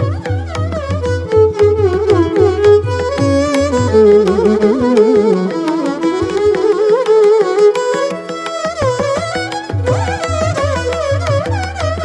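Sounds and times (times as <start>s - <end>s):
violins playing with gliding ornaments: 0.0s - 12.0s.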